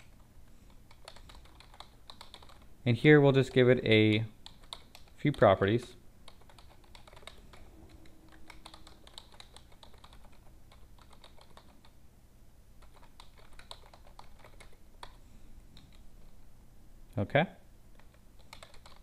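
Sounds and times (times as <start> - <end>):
low steady hum: 0.0 - 19.0
computer keyboard typing: 0.7 - 2.7, 4.4 - 5.6, 6.2 - 12.0, 12.8 - 15.2, 18.0 - 19.0.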